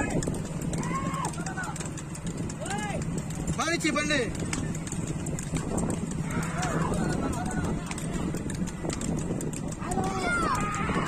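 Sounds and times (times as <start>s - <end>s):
people shouting: 0.0s - 1.8s, 6.1s - 8.3s, 9.8s - 11.0s
hooves clattering on road: 0.0s - 11.0s.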